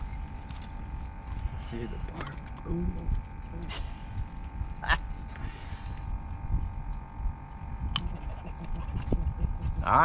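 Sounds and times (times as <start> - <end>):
faint steady hum: 0.0 - 10.0
wind rumble on microphone: 0.0 - 10.0.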